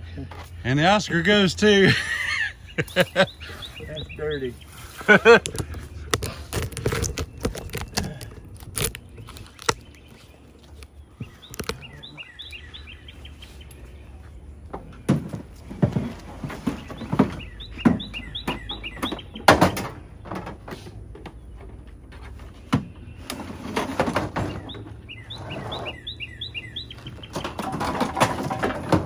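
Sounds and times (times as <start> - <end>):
small bird chirping: 2.6 - 4.9, 5.7 - 14.5, 16.7 - 19.8, 24.4 - 27.7.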